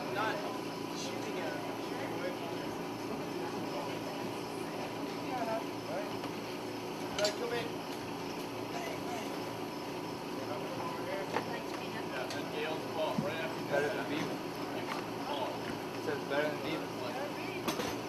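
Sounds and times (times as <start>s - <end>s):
chatter of people: 0.0s - 18.0s
steady background hum: 0.0s - 18.0s.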